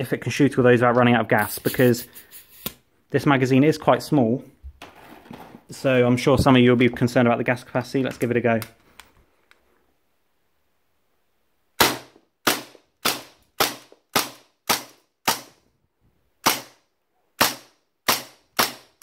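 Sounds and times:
airsoft pistol shots: 0:11.8 - 0:15.6, 0:16.4 - 0:16.8, 0:17.4 - 0:19.0.

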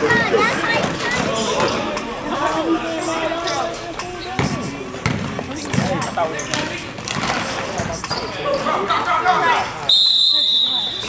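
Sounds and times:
voices from bench and stands: 0:00.0 - 0:11.0
basketball bouncing on gym floor: 0:04.4 - 0:07.4.

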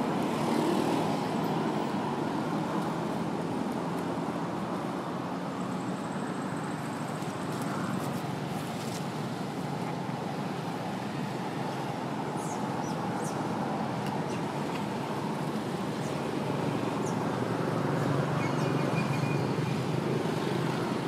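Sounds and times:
outdoor background rumble: 0:00.0 - 0:21.0.

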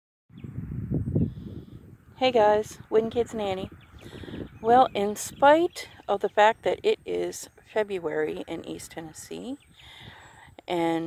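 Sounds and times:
low rumble on phone microphone: 0:00.3 - 0:06.4.

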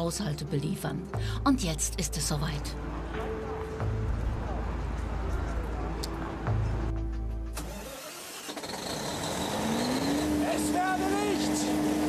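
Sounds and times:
diesel generator starting up: 0:07.5 - 0:12.0.

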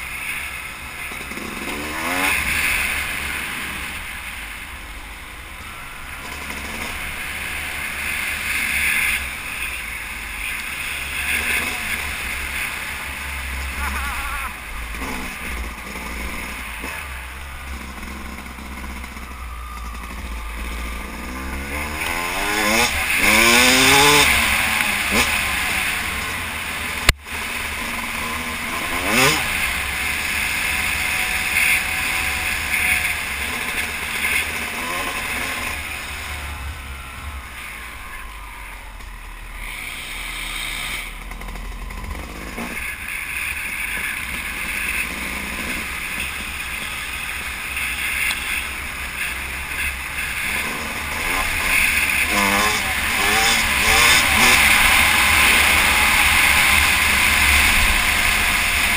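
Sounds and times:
dirt bike engine revving: 0:00.0 - 0:58.9.

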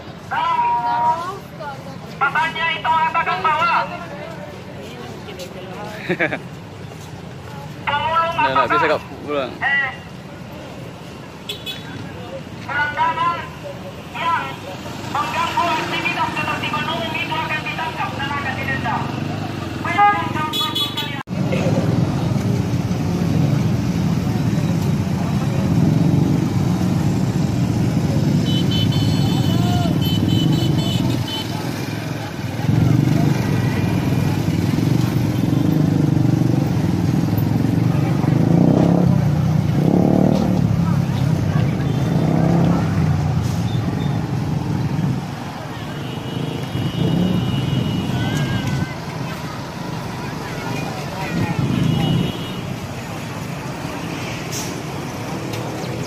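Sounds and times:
vehicle horns tooting: 0:11.5 - 0:12.0, 0:20.4 - 0:21.2, 0:28.4 - 0:31.7, 0:45.7 - 0:49.0, 0:51.3 - 0:52.8
motorcycle engine passing: 0:14.8 - 0:20.4, 0:21.6 - 0:54.4
truck engine passing: 0:21.3 - 0:56.0.

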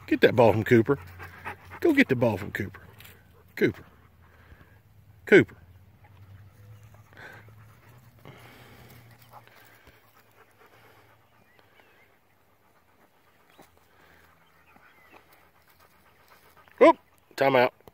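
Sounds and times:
dog panting: 0:00.0 - 0:05.0, 0:05.6 - 0:17.8.

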